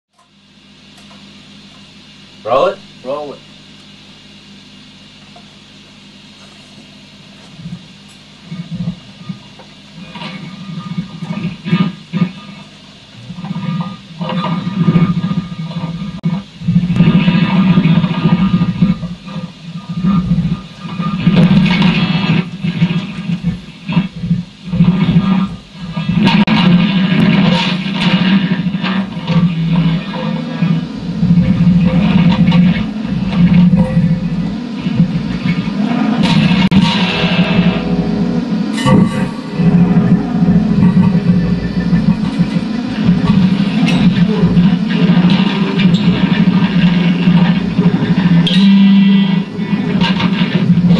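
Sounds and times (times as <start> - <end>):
electric guitars improvising: 7.1 - 50.9.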